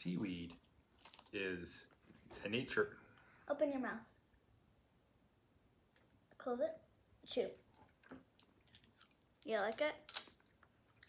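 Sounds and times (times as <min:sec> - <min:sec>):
faint crisp crackles: 0:00.0 - 0:03.4, 0:07.6 - 0:11.0
seaweed snack being chewed: 0:01.0 - 0:01.4.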